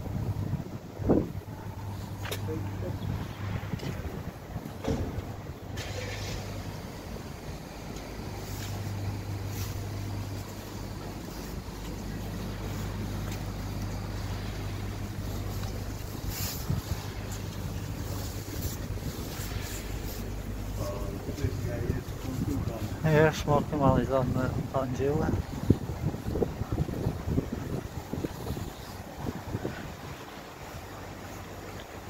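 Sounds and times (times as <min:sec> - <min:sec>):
vehicle engine humming: 0:00.0 - 0:32.0
wind noise on microphone: 0:00.0 - 0:32.0.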